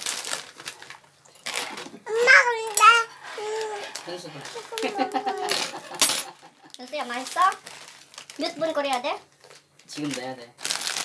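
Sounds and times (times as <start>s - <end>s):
plastic packet rustling: 0.0s - 11.0s
person laughing: 4.0s - 6.8s.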